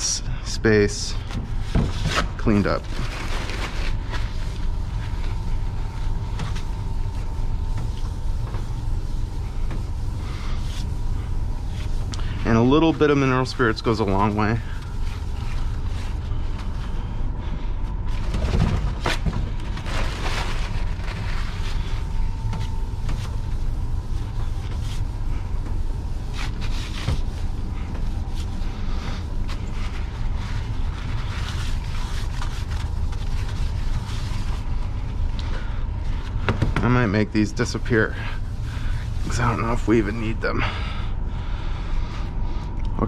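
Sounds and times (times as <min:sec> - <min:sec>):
low hum: 0:00.0 - 0:43.0.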